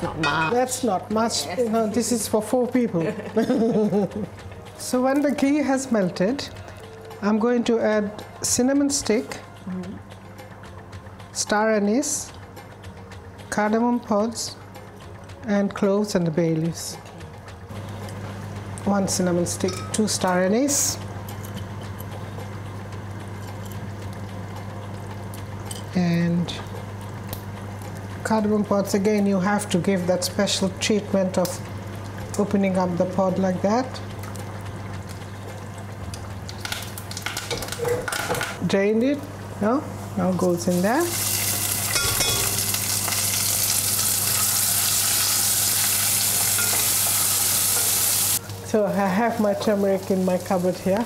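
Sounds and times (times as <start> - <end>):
spices sizzling in hot oil: 25.2 - 51.0
rice sizzling in hot fat: 39.9 - 51.0.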